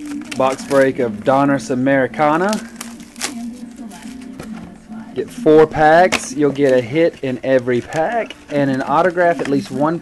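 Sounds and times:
plastic shrink-wrap crinkling: 0.0s - 10.0s.

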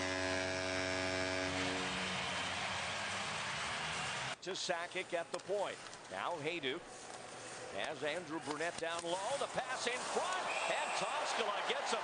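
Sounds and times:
arena goal horn blaring: 0.0s - 2.6s
crowd noise: 8.2s - 12.0s.

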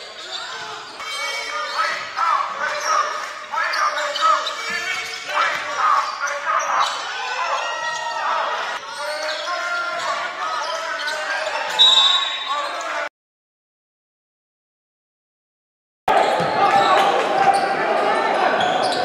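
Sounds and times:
players' voices: 0.0s - 13.1s
sneaker squeaks: 0.0s - 13.1s, 18.6s - 19.0s.

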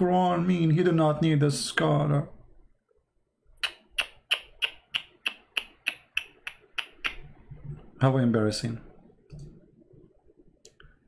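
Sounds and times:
sharp evenly spaced clicks: 3.6s - 7.2s.

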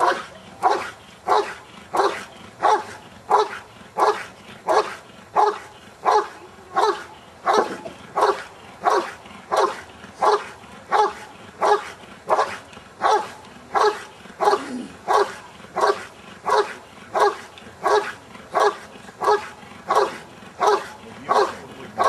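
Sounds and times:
dog barking: 0.0s - 22.0s.

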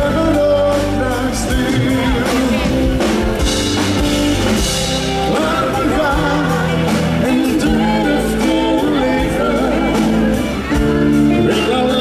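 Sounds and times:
drum kit: 0.0s - 12.0s
electric guitar: 0.0s - 12.0s
keyboards: 0.0s - 12.0s
person singing: 0.0s - 12.0s.

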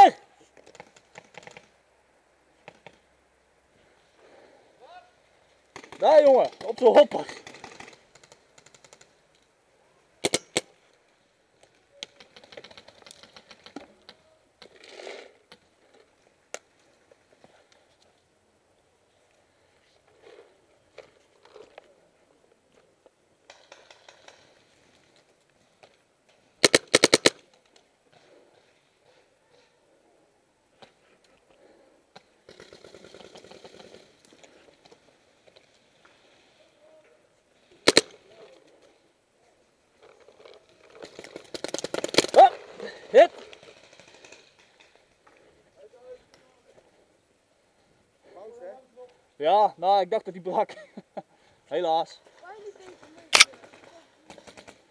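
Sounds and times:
paintball markers firing: 26.6s - 27.4s, 37.9s - 38.2s.

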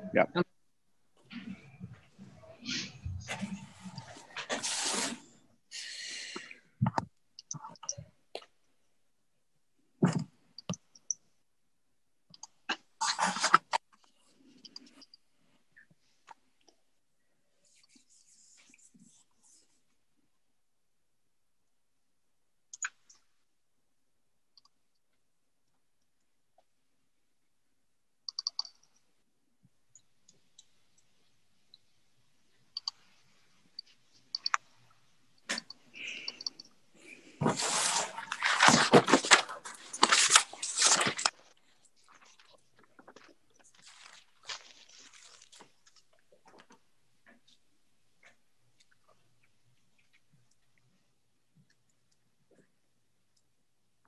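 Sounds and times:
computer mouse clicks: 28.3s - 29.0s, 32.7s - 33.0s, 33.8s - 34.6s, 35.5s - 36.7s.

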